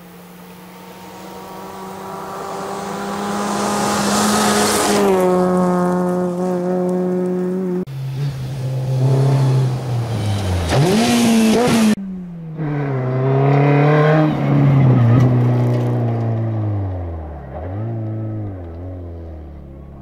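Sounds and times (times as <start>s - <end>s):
rally car engine revving: 0.0s - 20.0s.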